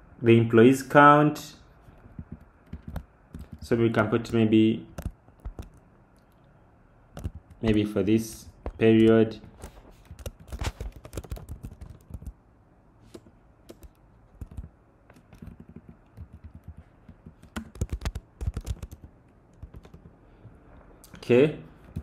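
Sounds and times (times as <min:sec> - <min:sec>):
computer keyboard typing: 0:02.1 - 0:06.5, 0:07.1 - 0:08.0, 0:08.6 - 0:12.4, 0:13.1 - 0:20.2.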